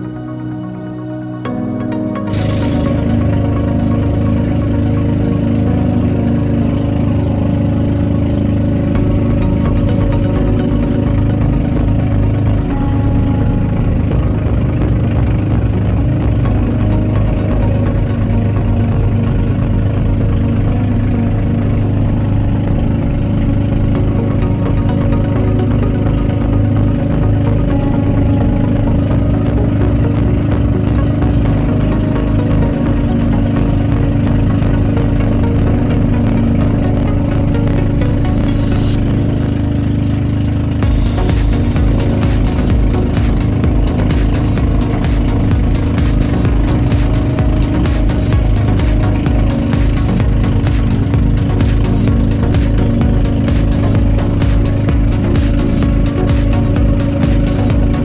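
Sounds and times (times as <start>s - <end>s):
boat engine running: 0.0s - 58.0s.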